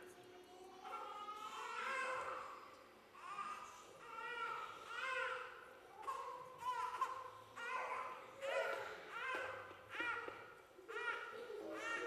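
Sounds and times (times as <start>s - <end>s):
small child babbling: 0.1s - 2.6s.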